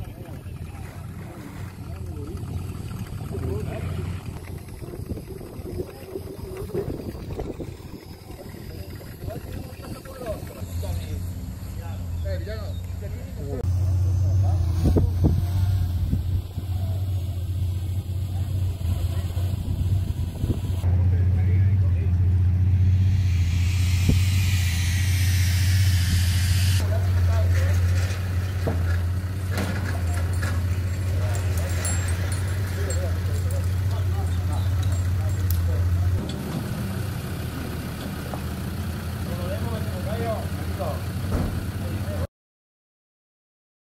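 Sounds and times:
people talking: 0:00.0 - 0:22.2, 0:26.8 - 0:28.2, 0:29.5 - 0:36.2, 0:39.2 - 0:42.3
low engine hum: 0:00.0 - 0:42.3
hiss falling in pitch: 0:22.8 - 0:26.8.

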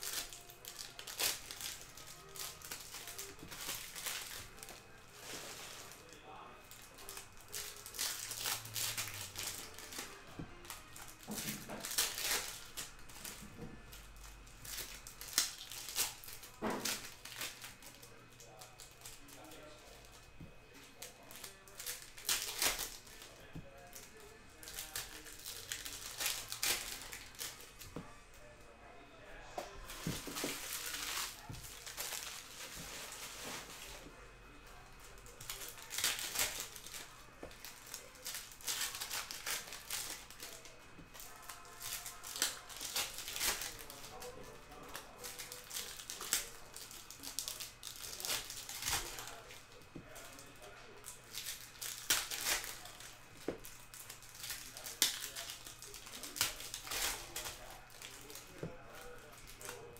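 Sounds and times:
foil wrappers crinkling: 0:00.0 - 0:59.9.

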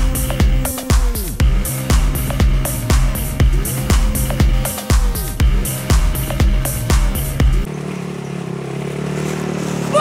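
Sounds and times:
electronic dance music: 0:00.0 - 0:07.7
buggy engine low hum: 0:00.0 - 0:10.0.

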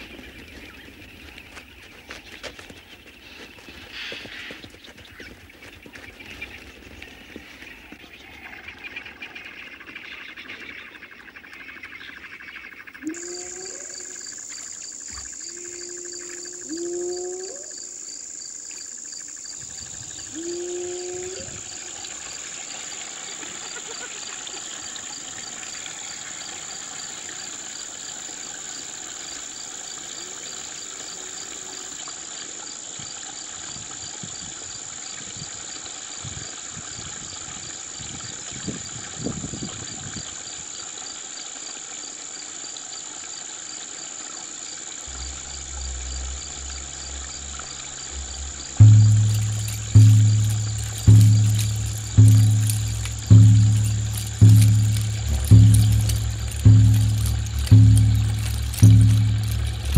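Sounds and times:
crickets chirping: 0:00.0 - 0:59.9.

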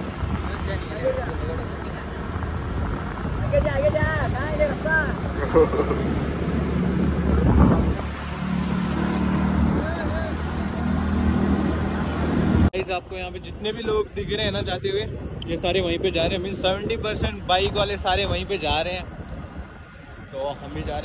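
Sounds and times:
wind noise on microphone: 0:00.0 - 0:21.0.

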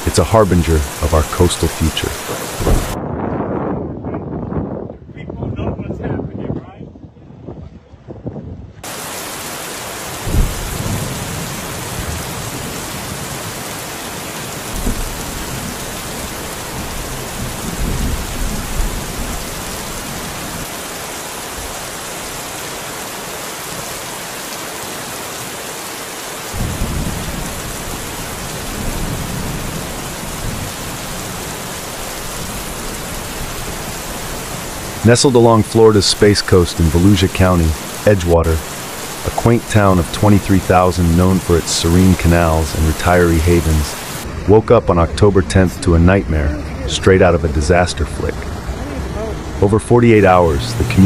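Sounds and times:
heavy rain: 0:00.0 - 0:03.0, 0:08.8 - 0:51.0
thunder clap: 0:00.0 - 0:04.8, 0:10.2 - 0:20.7, 0:26.5 - 0:45.2
rolling thunder rumbles: 0:02.0 - 0:22.6, 0:26.5 - 0:45.5.

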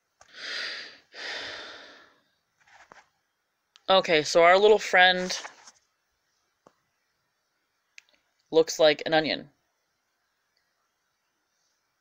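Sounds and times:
person sighing: 0:00.3 - 0:02.2.

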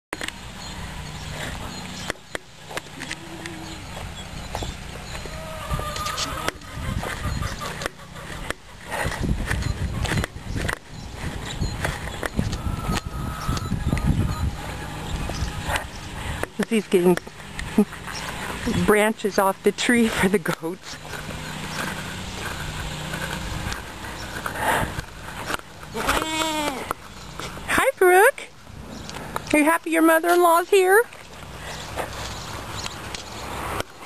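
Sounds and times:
steady outdoor noise: 0:00.1 - 0:34.0
faint goat calls: 0:03.0 - 0:03.8, 0:25.9 - 0:26.9.

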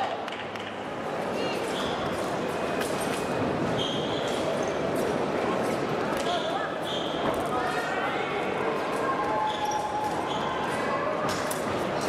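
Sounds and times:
crowd murmur: 0:00.0 - 0:12.0
shoes squeaking on floor: 0:03.8 - 0:05.1, 0:06.8 - 0:07.4.

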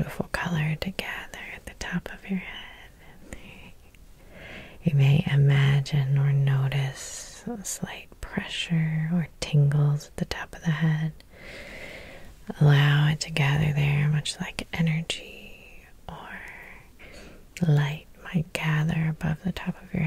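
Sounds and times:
woman whispering: 0:00.0 - 0:03.9, 0:04.8 - 0:11.2, 0:12.4 - 0:17.0, 0:17.6 - 0:20.0.

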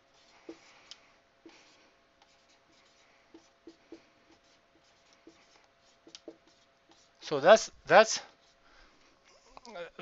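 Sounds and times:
marker writing on whiteboard: 0:00.0 - 0:08.6.

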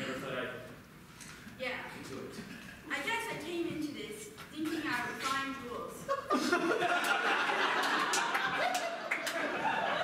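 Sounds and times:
audience laughing: 0:06.1 - 0:10.0.

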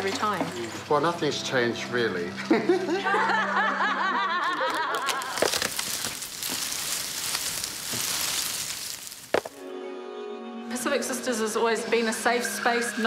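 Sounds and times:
hearty laughter: 0:02.4 - 0:05.4
videotape rustling: 0:04.3 - 0:09.6.

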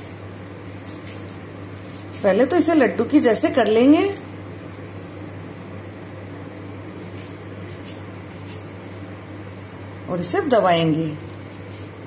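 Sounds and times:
low background hum: 0:00.0 - 0:12.0
room noise: 0:00.0 - 0:12.0.

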